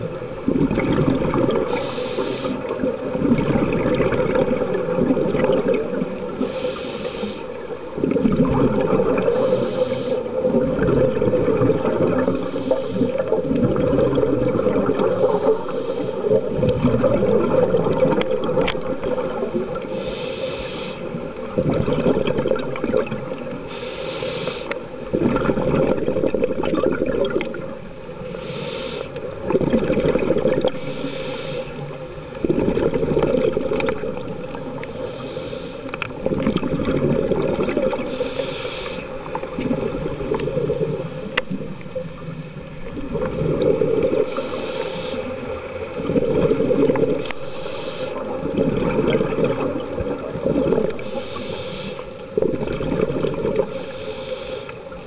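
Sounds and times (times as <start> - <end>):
exhaled bubbles burbling: 0.0 - 6.8, 7.4 - 20.1, 21.0 - 23.7, 24.8 - 28.4, 29.0 - 30.9, 31.6 - 53.9
regulator inhale hiss: 1.6 - 3.1, 6.3 - 7.7, 9.1 - 10.6, 12.2 - 13.4, 14.9 - 16.5, 19.8 - 21.5, 23.6 - 24.9, 28.2 - 29.4, 30.4 - 32.0, 33.7 - 36.1, 37.8 - 41.6, 43.8 - 48.7, 50.7 - 52.5, 53.4 - 55.0.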